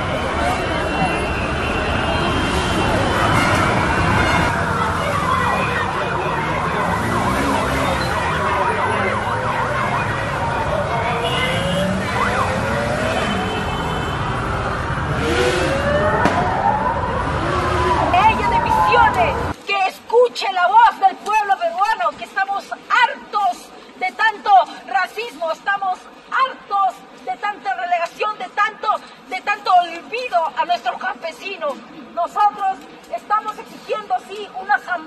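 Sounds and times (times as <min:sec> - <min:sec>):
motorcycle engines rumbling: 0:00.0 - 0:19.6
police sirens wailing: 0:00.0 - 0:19.6
street traffic: 0:00.0 - 0:35.0.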